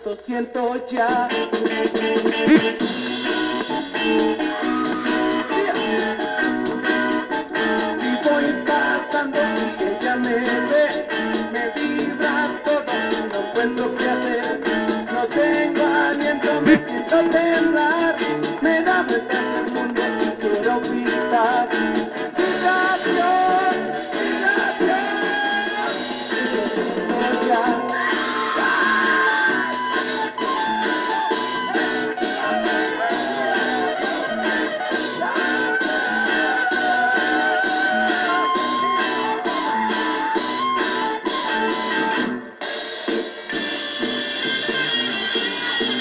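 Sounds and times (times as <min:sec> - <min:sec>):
garage rock record playing: 0:01.0 - 0:46.0.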